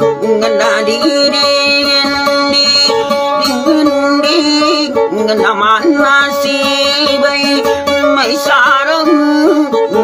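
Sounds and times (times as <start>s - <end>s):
acoustic guitar: 0.0s - 10.0s
man singing: 0.0s - 10.0s.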